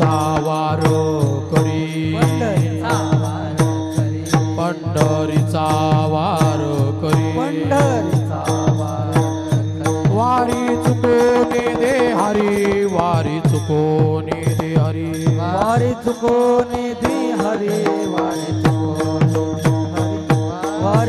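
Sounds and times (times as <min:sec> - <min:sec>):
person chanting: 0:00.0 - 0:09.2.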